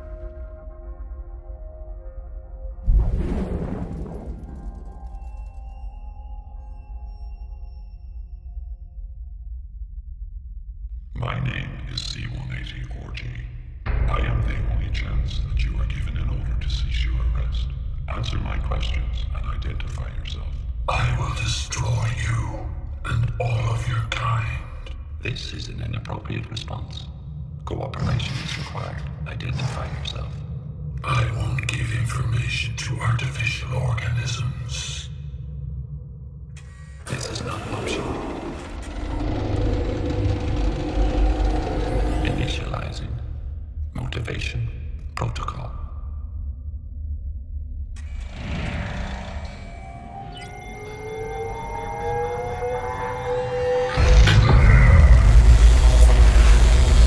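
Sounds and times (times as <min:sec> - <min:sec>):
deep low rumble: 0:02.8 - 0:06.3, 0:08.8 - 0:57.0.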